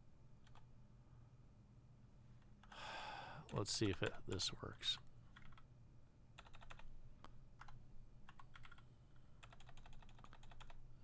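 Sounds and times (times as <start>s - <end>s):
computer keyboard typing: 0.4s - 0.7s, 5.3s - 5.7s, 6.4s - 6.9s, 7.6s - 8.8s, 9.4s - 10.8s.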